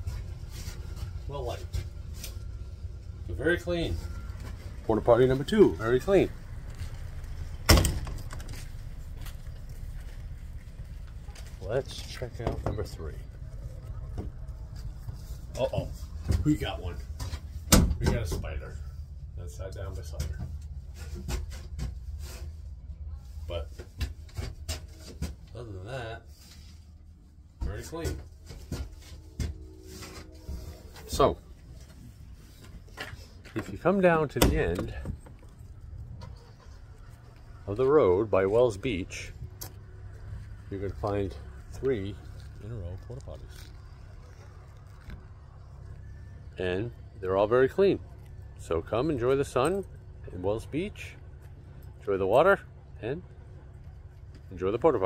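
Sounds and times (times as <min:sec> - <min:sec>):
steady low rumble: 0:00.0 - 0:23.8, 0:25.4 - 0:55.0.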